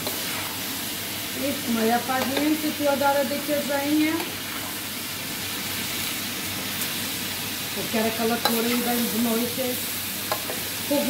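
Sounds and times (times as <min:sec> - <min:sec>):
food sizzling in frying pan: 0:00.0 - 0:11.0.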